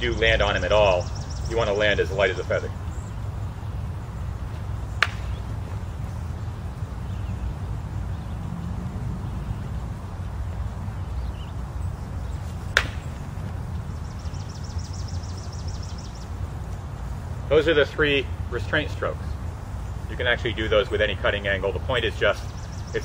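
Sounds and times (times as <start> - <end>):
low outdoor rumble: 0.0 - 23.0.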